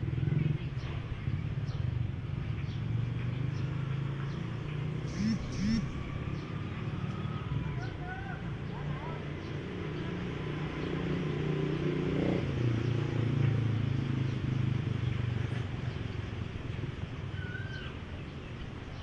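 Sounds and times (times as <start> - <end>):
bird chirp: 4.3 - 6.6
low motor hum: 5.0 - 7.6.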